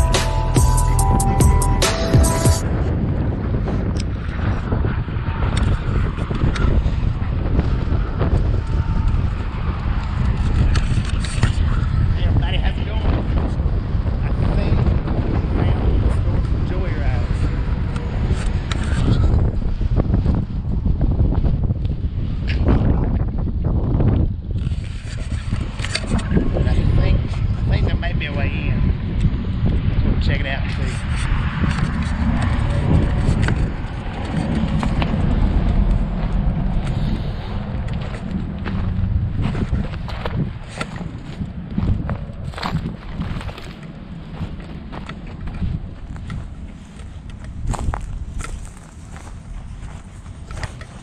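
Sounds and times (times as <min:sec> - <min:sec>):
wind buffeting microphone: 0:01.0 - 0:51.0.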